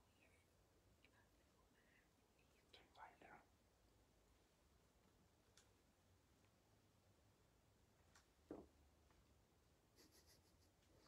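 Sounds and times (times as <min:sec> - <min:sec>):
faint whispering: 0:00.0 - 0:03.6.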